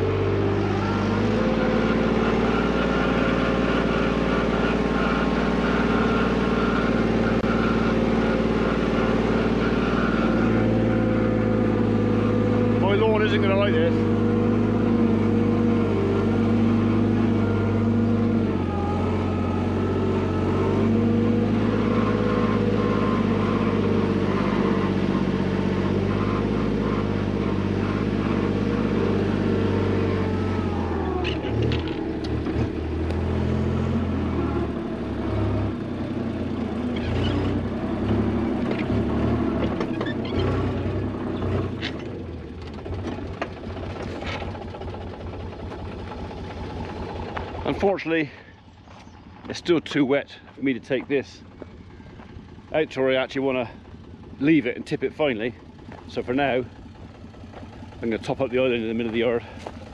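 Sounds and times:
diesel engine running: 0.0s - 59.9s
engine knocks and rattles: 0.0s - 59.9s.

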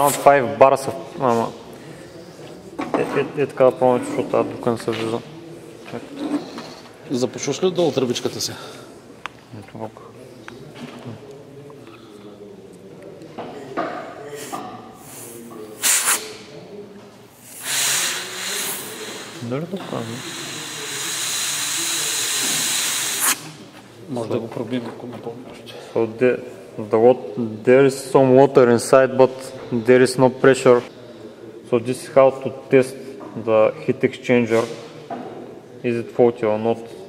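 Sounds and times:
compressed air hissing from nozzle: 14.4s - 16.4s, 17.4s - 23.6s.

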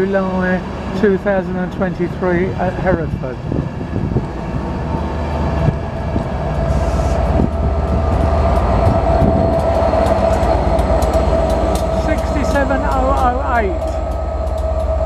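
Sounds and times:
diesel locomotive engine hum: 0.0s - 15.0s
passenger train rumbling past: 0.0s - 15.0s
train wheel clicks: 6.1s - 15.0s.

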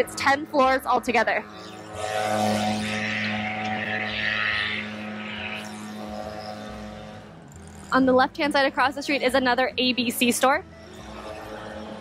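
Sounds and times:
vehicle engine passing: 0.0s - 12.0s.

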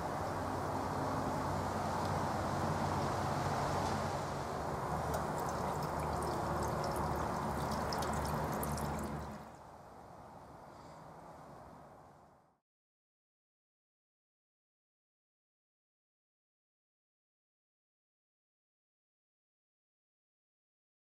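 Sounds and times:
liquid fizzing and bubbling: 5.0s - 9.6s.

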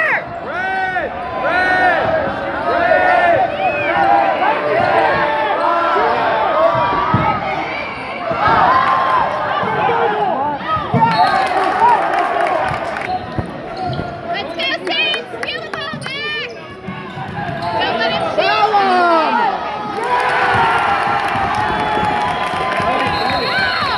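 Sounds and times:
voices in a gym: 0.0s - 23.9s
people clapping: 11.3s - 13.6s, 14.6s - 16.5s, 19.9s - 23.9s
sneakers squeaking on court: 13.1s - 14.8s, 15.5s - 18.2s.

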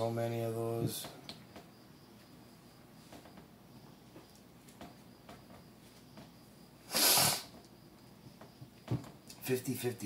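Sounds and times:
loud burst of breath: 6.8s - 7.6s.

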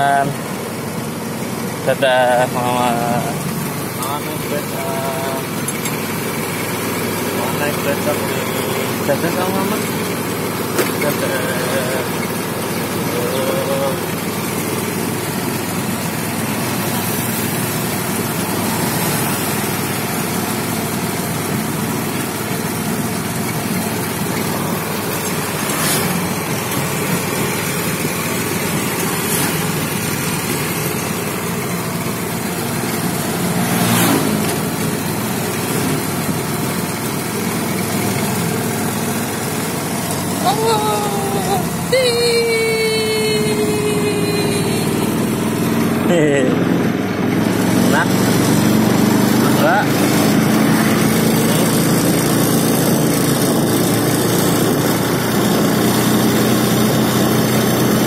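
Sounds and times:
rumble of moving pedicab: 0.0s - 58.0s.

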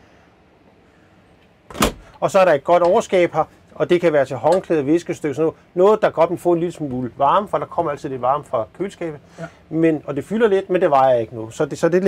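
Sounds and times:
refrigerator door thud: 1.7s - 2.1s.

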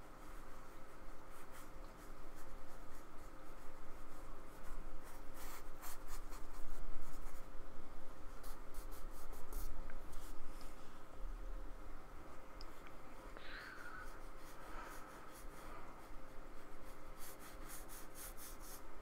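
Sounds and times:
paintbrush scratching on card: 0.2s - 7.5s, 8.3s - 10.7s, 14.0s - 18.9s.

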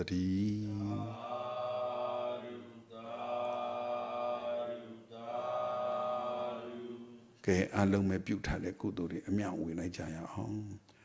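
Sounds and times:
man chanting in monotone: 0.0s - 1.4s.

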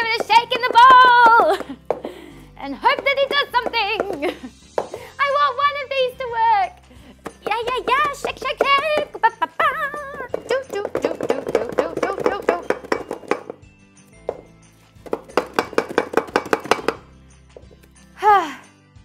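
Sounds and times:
background music: 0.0s - 19.0s
woman laughing: 1.4s - 1.9s, 4.1s - 4.5s, 9.0s - 10.3s
glass bowl rattling when shaken: 9.9s - 13.6s.

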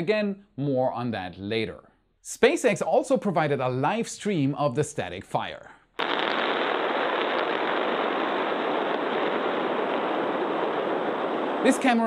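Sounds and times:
rocket engines rushing roar: 6.0s - 12.0s.

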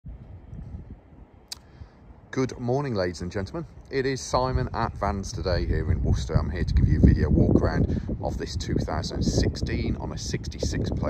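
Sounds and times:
uneven low rumble: 0.1s - 2.4s, 3.2s - 11.0s
sharp click: 1.5s - 1.7s.

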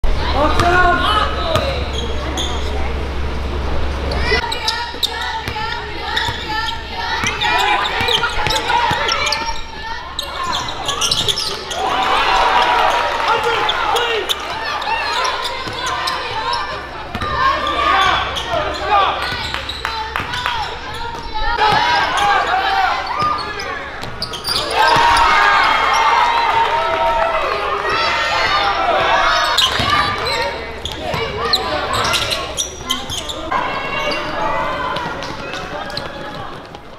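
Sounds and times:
voices and shouts: 4.1s - 36.7s.

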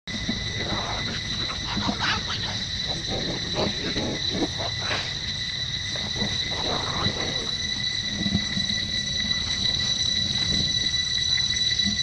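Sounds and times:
insects droning: 0.1s - 12.0s.

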